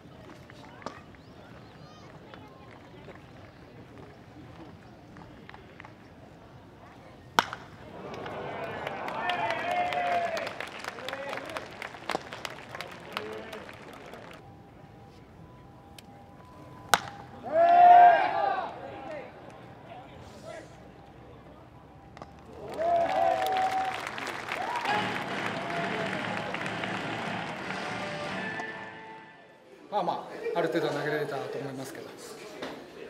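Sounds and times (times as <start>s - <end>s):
distant voices: 0.0s - 29.6s
bat hitting baseball: 7.4s - 8.2s, 16.9s - 17.2s
spectators shouting: 22.7s - 29.5s.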